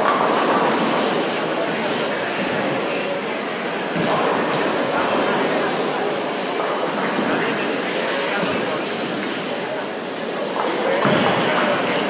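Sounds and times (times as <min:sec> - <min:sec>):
rumble of bowling alley: 0:00.0 - 0:12.0.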